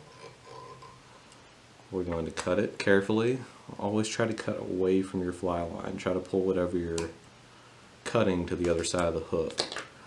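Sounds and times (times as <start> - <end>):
man speaking: 1.9 - 7.2, 8.0 - 9.7.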